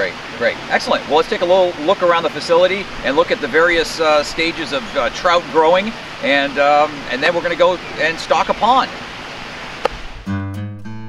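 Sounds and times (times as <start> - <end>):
outdoor hiss: 0.0 - 10.2
acoustic guitar strumming: 10.2 - 11.0.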